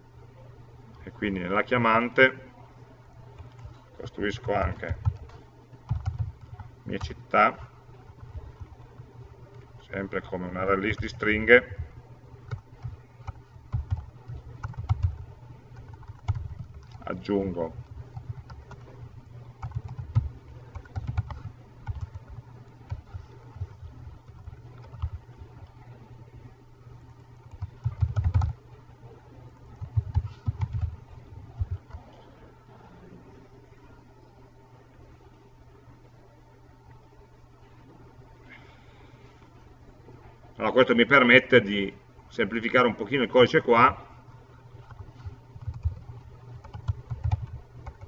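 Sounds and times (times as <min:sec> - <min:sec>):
typing on computer keyboard: 0:04.4 - 0:07.1, 0:12.4 - 0:17.1, 0:17.8 - 0:19.0, 0:19.6 - 0:25.3, 0:27.4 - 0:28.6, 0:29.8 - 0:32.1, 0:44.8 - 0:48.0.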